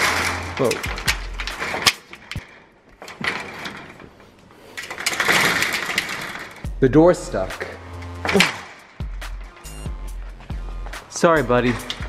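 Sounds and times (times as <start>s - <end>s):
screen door rattling: 0.0s - 4.2s, 4.8s - 12.0s.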